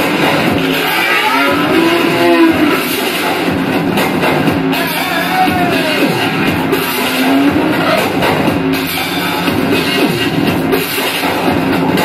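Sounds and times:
dense noise music: 0.0 - 12.0
tone sliding down: 0.9 - 2.8.

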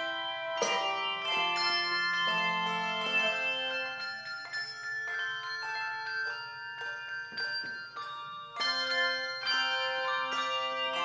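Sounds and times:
handbells ringing in chords: 0.0 - 11.0.

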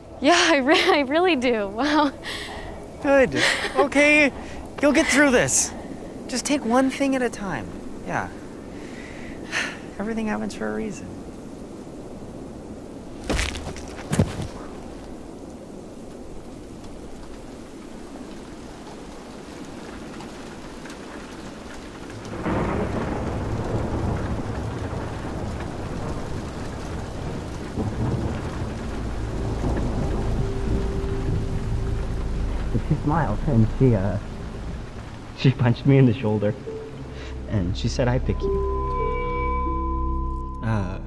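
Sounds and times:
hailstones striking: 0.3 - 11.7, 12.4 - 38.2
rumbling thunder: 14.2 - 40.1
low steady held tone: 36.6 - 41.0.

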